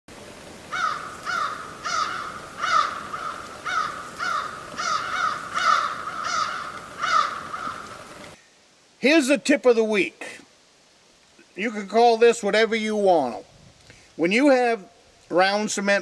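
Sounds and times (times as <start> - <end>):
crow cawing: 0.7 - 8.2.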